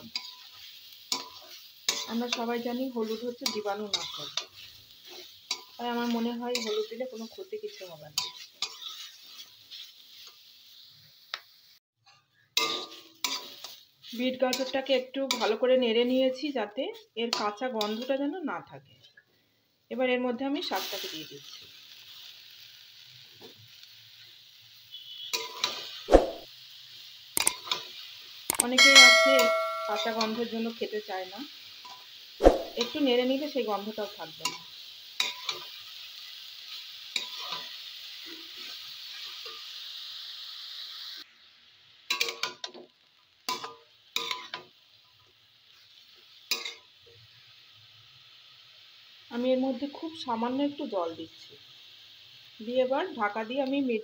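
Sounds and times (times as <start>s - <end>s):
metal spatula scraping wok: 0.0s - 10.8s, 12.1s - 16.2s
light sizzle: 0.0s - 54.0s.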